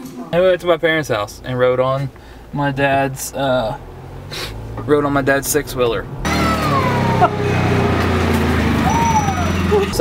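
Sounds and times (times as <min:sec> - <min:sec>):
utility vehicle engine running: 0:03.9 - 0:10.0.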